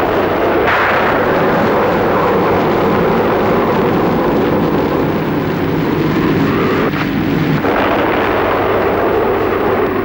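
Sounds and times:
wind roaring: 0.0s - 10.0s.

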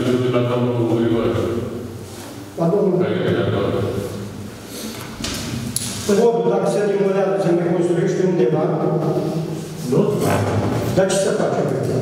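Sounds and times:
man speaking: 0.0s - 1.8s, 2.6s - 4.2s, 6.0s - 12.0s.

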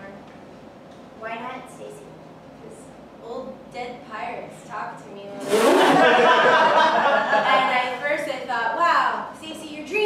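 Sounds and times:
audience laughing: 5.5s - 7.9s.

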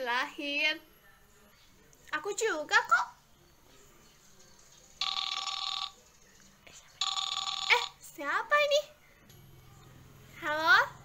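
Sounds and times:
telephone ringtone ringing: 5.0s - 6.0s, 7.0s - 8.1s.

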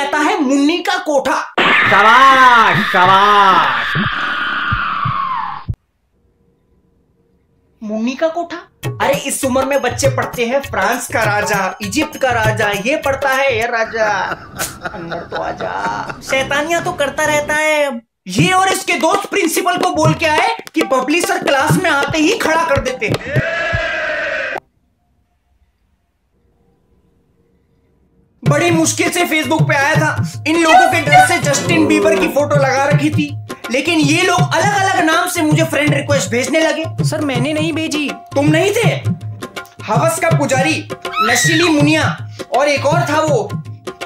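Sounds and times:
voice holding high note: 30.6s - 32.6s.

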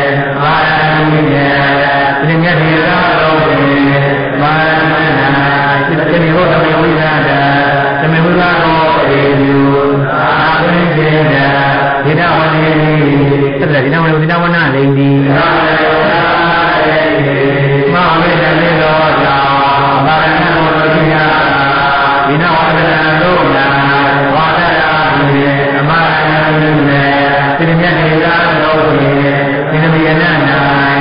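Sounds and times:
man chanting: 0.0s - 31.0s.

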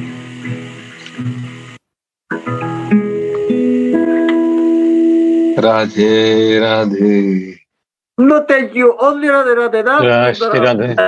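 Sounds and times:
acoustic guitar chords: 0.0s - 7.5s.

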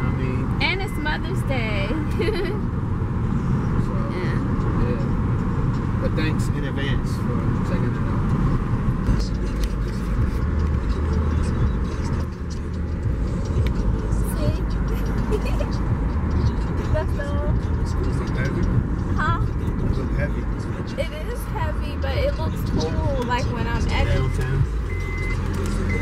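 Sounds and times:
voices: 0.0s - 2.6s, 6.0s - 26.0s
car road and engine rumble: 0.0s - 26.0s.

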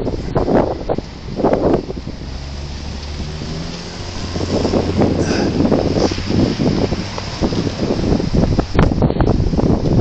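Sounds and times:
car engine running: 0.0s - 10.0s
wind rumbling on microphone: 0.0s - 10.0s.

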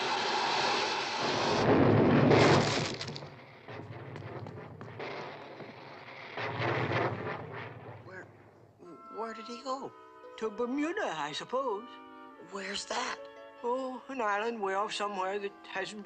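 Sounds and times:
low rumble: 1.1s - 8.8s.

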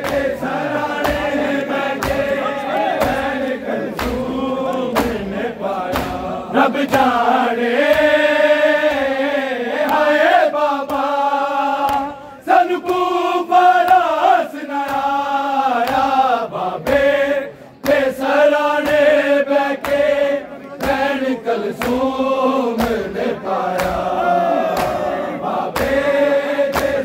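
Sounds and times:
hands slapping chests: 0.0s - 17.2s, 17.8s - 27.0s
men chanting in unison: 0.0s - 27.0s.

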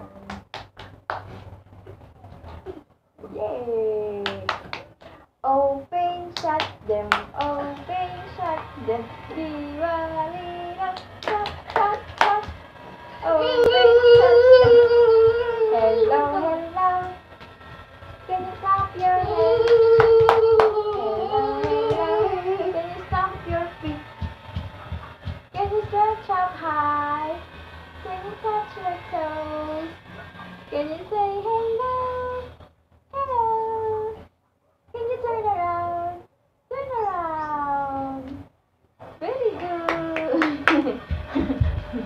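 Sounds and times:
child singing held notes: 13.2s - 17.3s, 18.3s - 24.3s.

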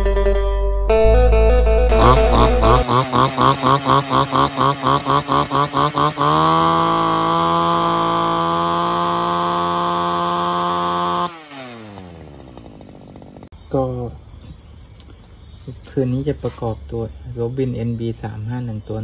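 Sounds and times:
brush cutter engine revving: 1.8s - 13.5s.

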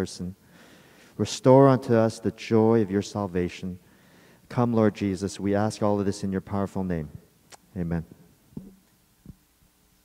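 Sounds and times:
microphone handling thumps: 8.5s - 9.4s.

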